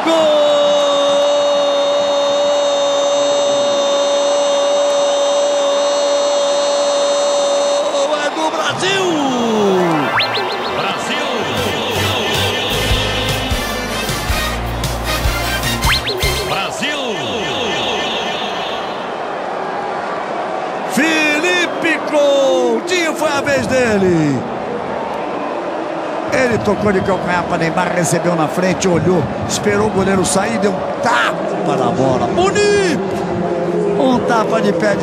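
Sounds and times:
music: 11.3s - 16.7s.

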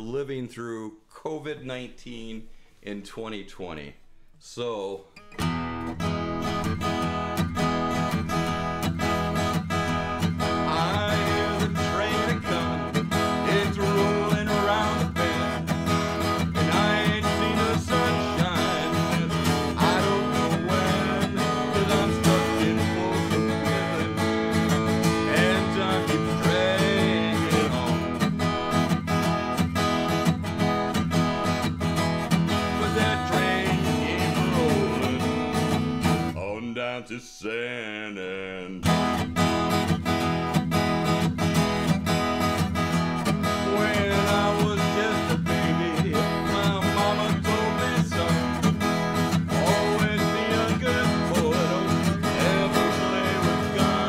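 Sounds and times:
man singing: 0.0s - 5.1s, 9.8s - 28.4s, 32.3s - 39.0s, 43.3s - 54.0s
acoustic guitar strumming: 5.1s - 54.0s.

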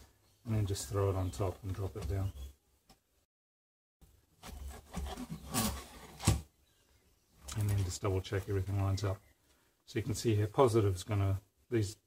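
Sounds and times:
plastic rubbing on metal rods: 4.4s - 6.4s.

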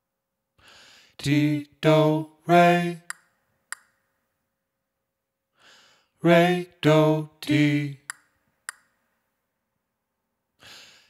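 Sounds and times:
singer's faint intake of breath: 0.6s - 1.2s, 5.6s - 6.1s, 10.6s - 11.0s.

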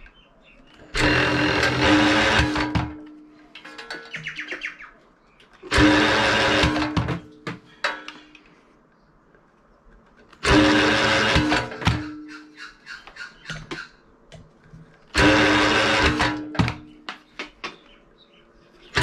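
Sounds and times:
cordless drill motor whining: 0.8s - 3.0s, 5.6s - 7.1s, 10.4s - 12.0s, 15.1s - 16.8s
rattle of clicks: 3.5s - 4.4s.

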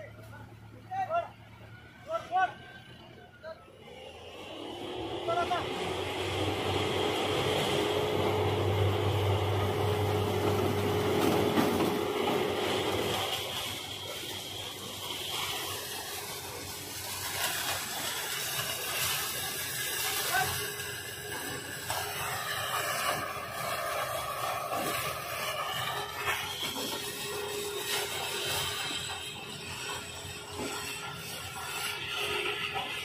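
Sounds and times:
tractor engine under load: 0.0s - 33.0s
hydraulic whine: 0.2s - 33.0s.

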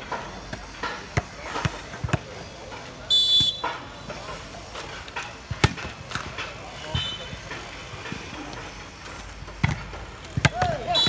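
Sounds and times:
players and spectators talking: 0.0s - 11.0s
volleyball hit by hand: 5.5s - 6.4s, 9.6s - 11.0s.

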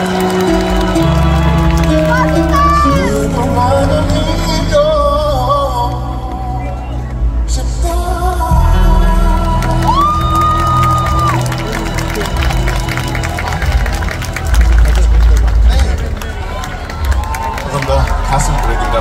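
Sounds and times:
audience cheering and clapping: 0.0s - 4.4s, 9.2s - 19.0s
pop music with heavy bass: 2.0s - 11.9s.

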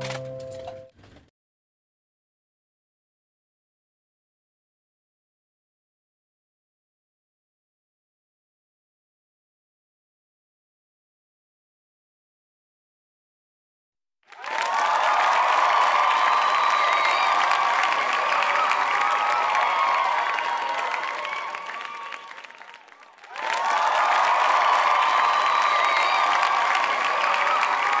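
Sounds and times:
crowd applause and cheering: 14.3s - 28.0s
crowd whistles: 14.3s - 28.0s.

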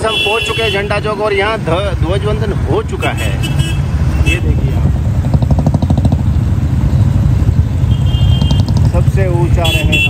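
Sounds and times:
motorcycle engine running: 4.8s - 10.0s.

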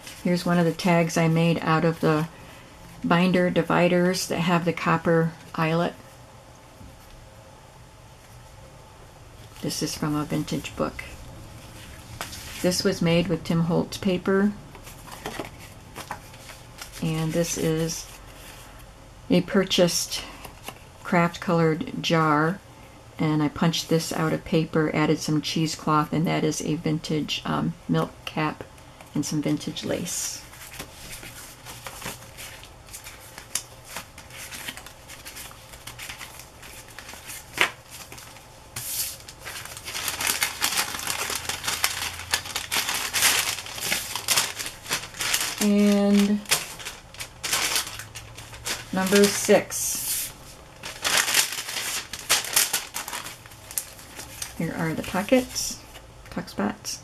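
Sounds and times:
paper rustling: 0.0s - 2.3s, 14.8s - 18.7s, 30.4s - 56.0s.

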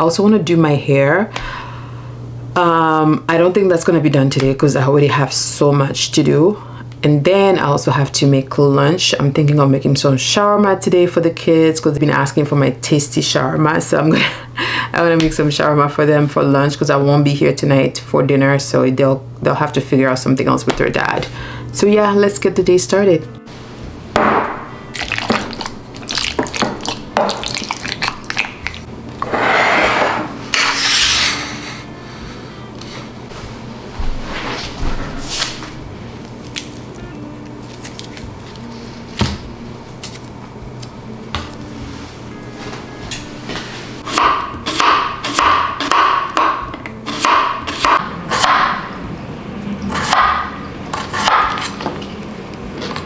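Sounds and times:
wet squelching of chicken: 25.0s - 28.8s
spoon scraping glass bowl: 29.2s - 31.5s.

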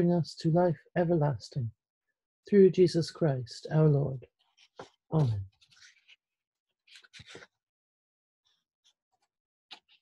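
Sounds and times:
paper pages rustling: 4.4s - 7.6s, 8.5s - 10.0s.

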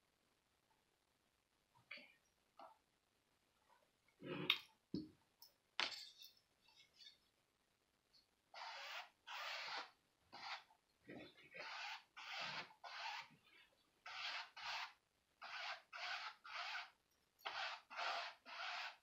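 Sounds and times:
paintbrush scratching on canvas: 8.5s - 13.4s, 14.0s - 19.0s.

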